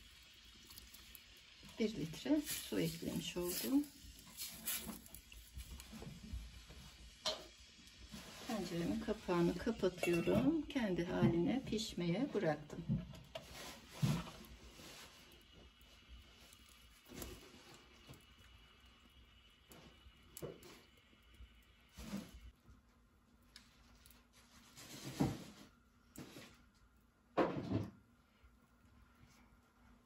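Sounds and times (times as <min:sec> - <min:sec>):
wood fire crackling: 0:00.0 - 0:30.0
fire pops and knocks: 0:08.9 - 0:18.5.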